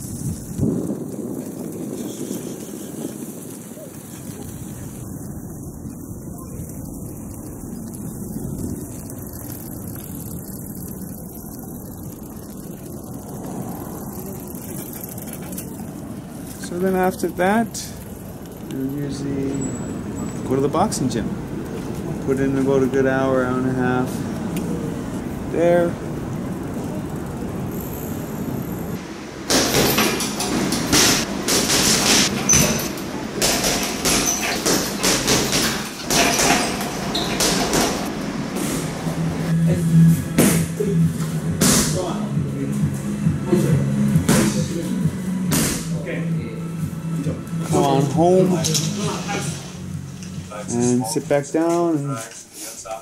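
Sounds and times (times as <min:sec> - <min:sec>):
wind buffeting microphone: 0:00.0 - 0:29.4
street background noise: 0:00.0 - 0:53.0
strikes on heavy bag: 0:45.5 - 0:45.9.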